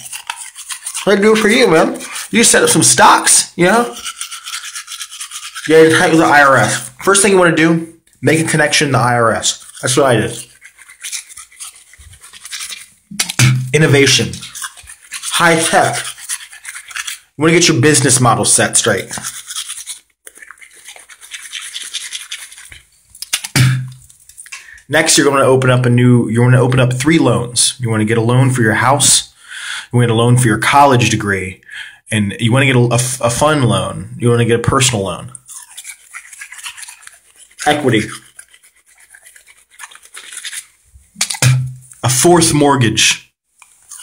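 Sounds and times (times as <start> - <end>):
scratchy rubbing on microphone: 0.0 - 7.3, 8.4 - 24.1, 34.9 - 42.0
toothbrush scrubbing teeth: 0.0 - 26.0, 33.0 - 42.5, 43.6 - 44.0.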